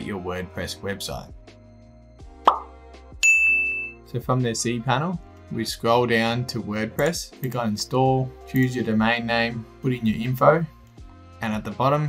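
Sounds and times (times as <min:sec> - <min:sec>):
soft background music: 0:00.0 - 0:12.0
bright bell-like ding: 0:03.2 - 0:04.0.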